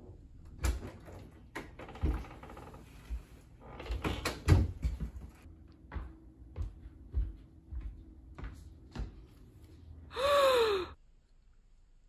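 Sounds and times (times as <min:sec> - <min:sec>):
woman gasping: 0:10.1 - 0:11.0.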